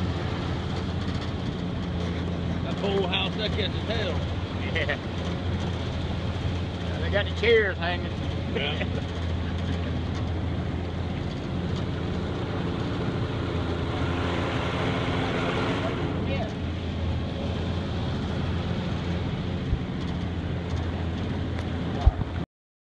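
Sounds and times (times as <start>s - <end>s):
outboard motor running: 0.0s - 22.4s.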